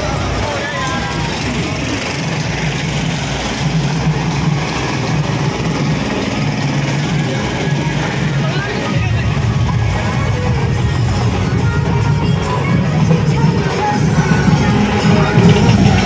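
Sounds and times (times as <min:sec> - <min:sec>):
crowd voices: 0:00.0 - 0:16.0
loud music with heavy bass: 0:00.0 - 0:16.0.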